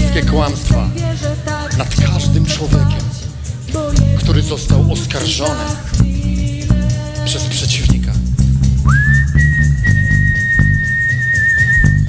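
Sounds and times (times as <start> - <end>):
worship band music: 0.0 - 12.0
high whistling tone sliding up: 8.8 - 12.0.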